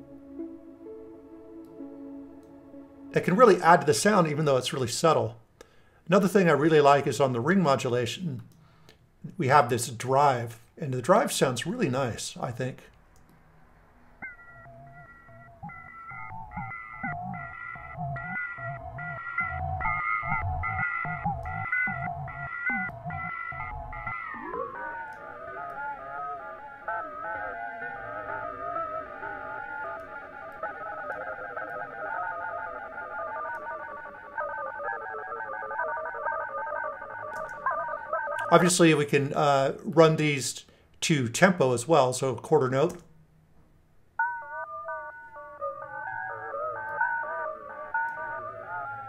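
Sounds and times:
wavering ring-modulated tone: 14.2s - 38.5s, 44.2s - 49.0s
pitched ringing tones: 14.2s - 38.9s.

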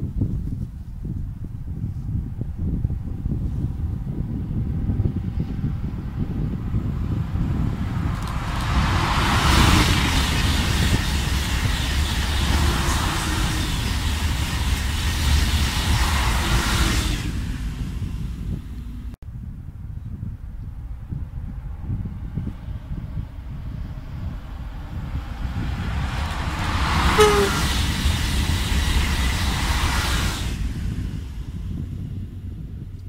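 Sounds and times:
wind rumble on microphone: 0.0s - 33.0s
train passing at speed: 2.2s - 19.2s, 20.9s - 33.0s.

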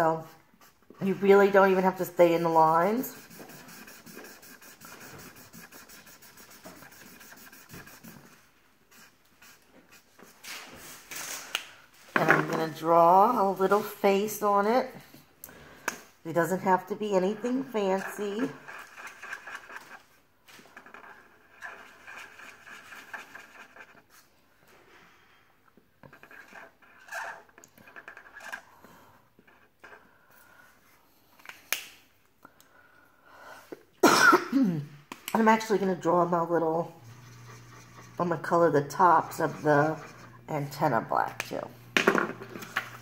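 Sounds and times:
marker scribbling on paper: 0.6s - 10.4s, 16.4s - 20.0s, 20.8s - 24.1s, 37.0s - 40.6s.

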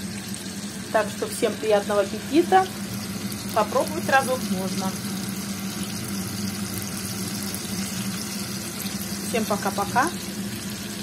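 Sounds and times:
fish frying in oil: 0.0s - 11.0s.

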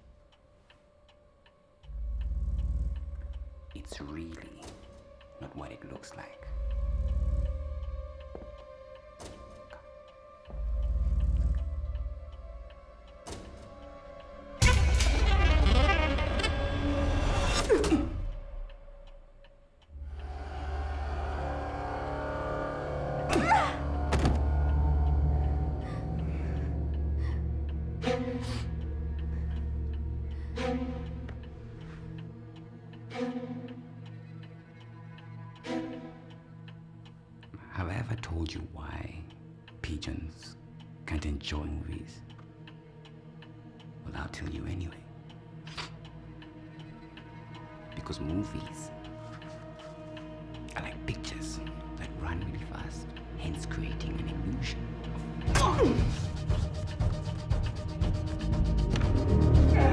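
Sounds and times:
pendulum clock ticking: 0.0s - 14.8s, 17.1s - 59.9s
low drone with held tones: 19.9s - 32.9s.

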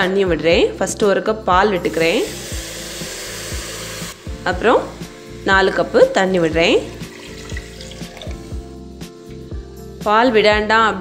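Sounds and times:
background music with steady beat: 0.0s - 11.0s
water pouring into a pot: 1.9s - 8.7s.

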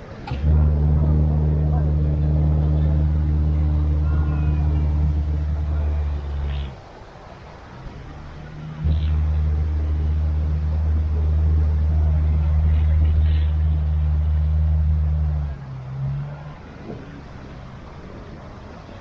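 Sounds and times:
engine held at steady revs: 0.0s - 18.8s.

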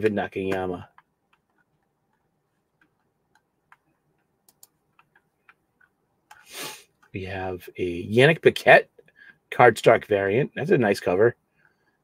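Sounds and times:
computer mouse clicks: 0.5s - 7.1s
short breathy hiss: 6.4s - 6.9s.

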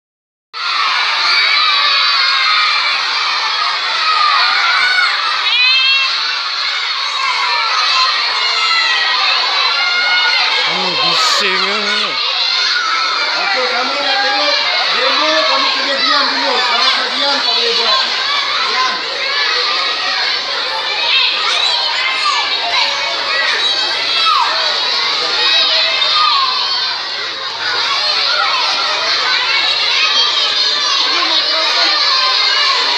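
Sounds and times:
crowd of children shouting: 0.6s - 32.9s
shrill child voice: 10.7s - 12.2s.

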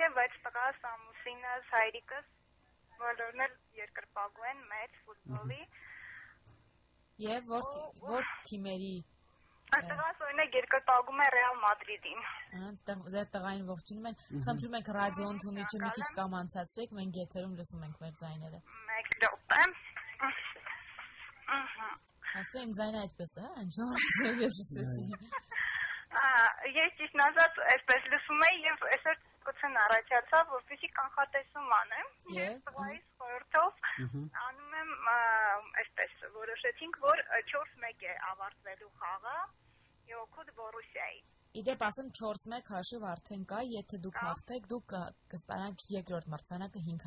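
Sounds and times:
person speaking over telephone: 4.1s - 5.7s, 9.7s - 12.4s, 13.4s - 16.3s, 18.4s - 30.5s, 31.8s - 35.2s.

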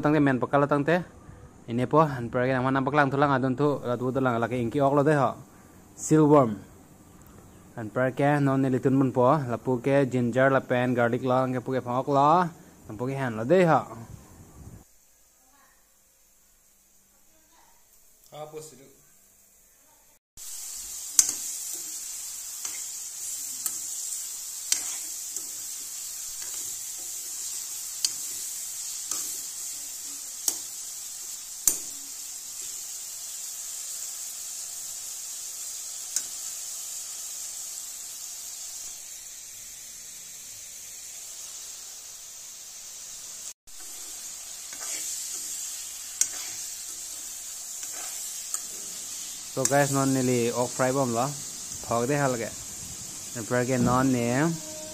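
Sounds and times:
meat sizzling in a wok: 7.7s - 18.2s, 20.4s - 54.9s.

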